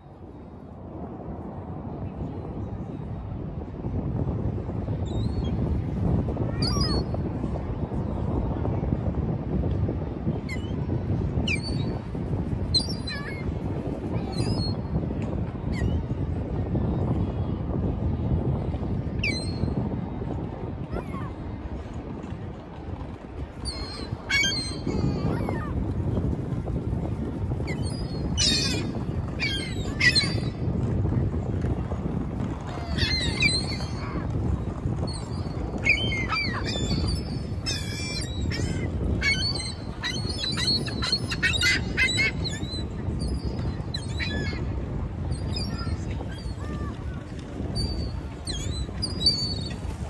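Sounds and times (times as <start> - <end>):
low rush of background noise: 0.0 - 50.0
gulls squawking: 35.9 - 42.7.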